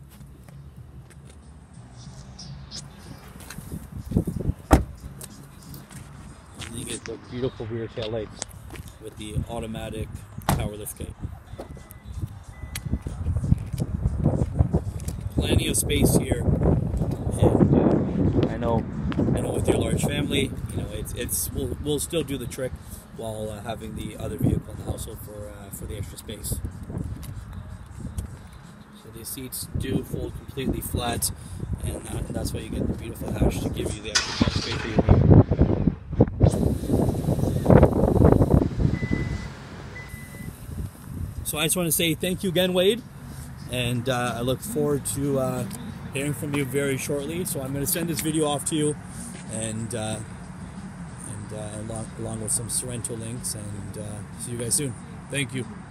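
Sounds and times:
wind buffeting microphone: 3.0s - 5.2s, 9.2s - 22.0s, 29.7s - 39.5s, 40.4s - 41.6s
microphone handling noise: 33.3s - 38.9s
sharp click: 34.1s - 35.1s
high beeps: 38.9s - 40.6s.

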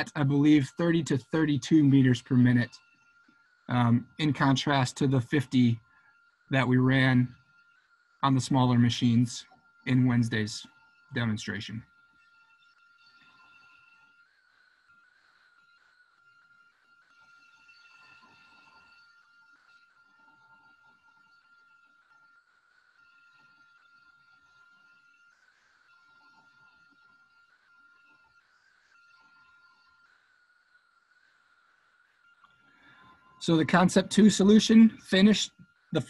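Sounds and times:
router high whine: 0.0s - 36.0s.

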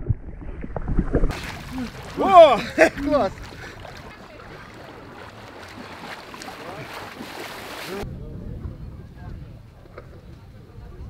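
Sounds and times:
icy water splashing: 0.0s - 8.0s
faint voices: 1.7s - 11.0s.

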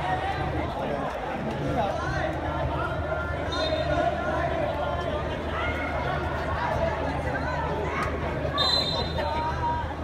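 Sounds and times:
spectators and players calling out: 0.0s - 10.0s.

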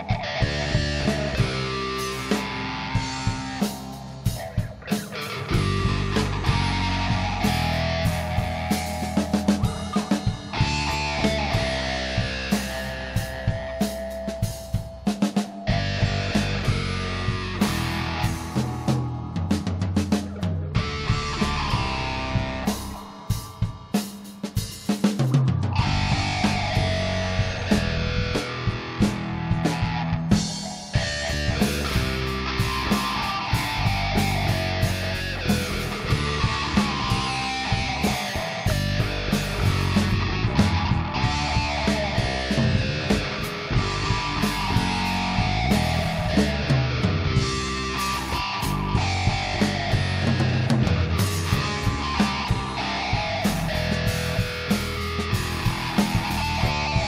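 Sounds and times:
bass guitar: 0.0s - 57.0s
drum kit: 0.0s - 57.0s
electric guitar: 0.0s - 57.0s.

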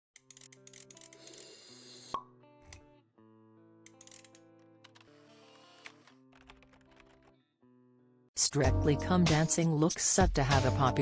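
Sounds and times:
plucked guitar background music: 2.2s - 7.8s, 8.4s - 11.0s.

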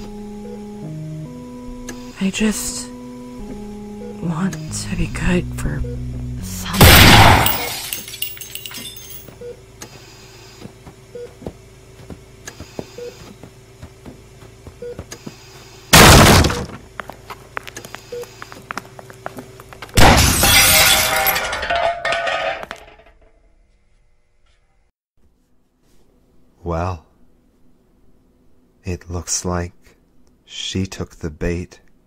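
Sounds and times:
low steady drone: 0.0s - 8.7s
crash with breaking and clattering: 6.8s - 8.8s, 16.0s - 16.7s, 20.0s - 23.0s.

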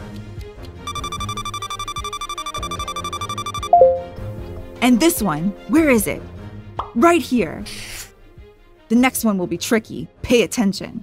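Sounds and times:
rapid electronic timer beeping: 0.9s - 4.0s
game music: 0.9s - 4.5s.

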